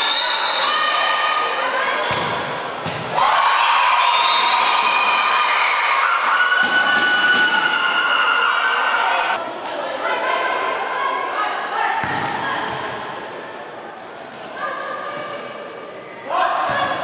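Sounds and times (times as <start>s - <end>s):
spectators shouting and cheering: 2.8s - 9.4s.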